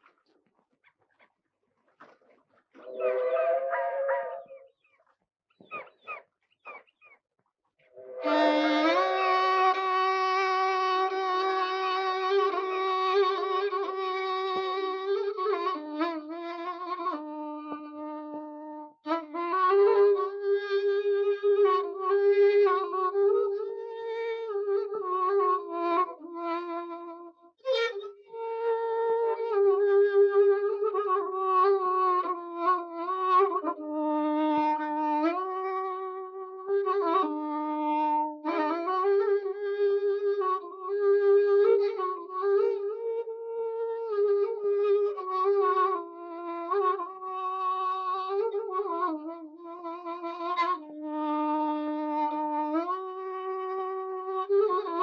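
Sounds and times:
solo violin slow melody: 8.0s - 55.0s.

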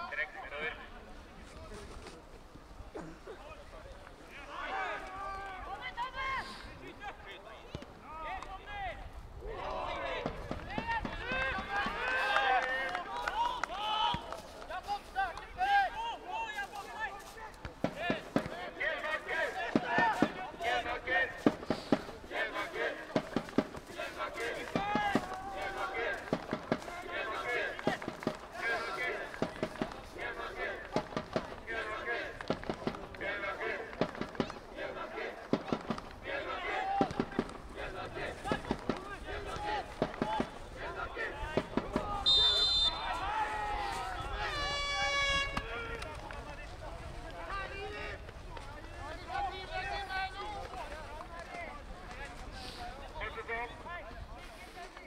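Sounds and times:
players shouting: 4.2s - 54.1s
high whistle: 42.2s - 43.1s.

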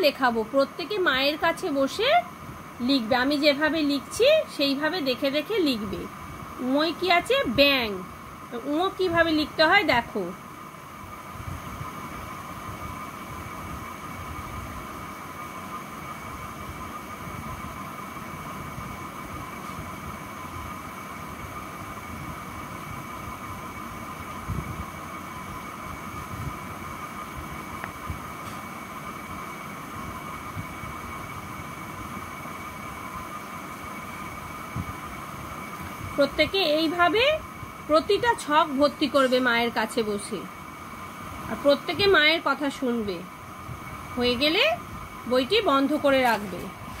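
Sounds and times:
motor hum with high whine: 0.0s - 47.0s.

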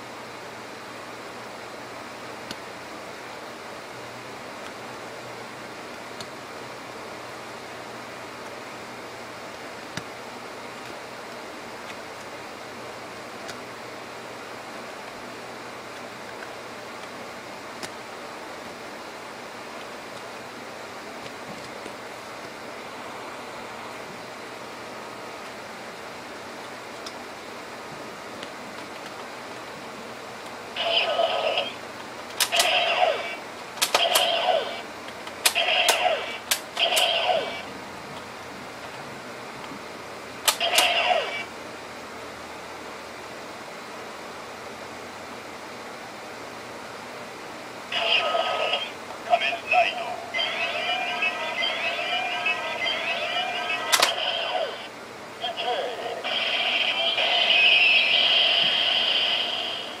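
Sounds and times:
toy electronic sound effect: 30.8s - 31.8s, 32.4s - 34.8s, 35.5s - 37.7s, 40.5s - 41.5s, 48.0s - 54.9s, 55.5s - 60.0s.

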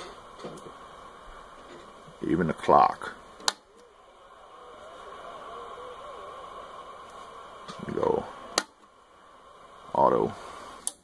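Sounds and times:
faint radio hiss: 0.0s - 11.0s
radio switch click: 3.4s - 3.9s, 7.0s - 8.8s
wavering thin whistle: 3.4s - 8.6s.

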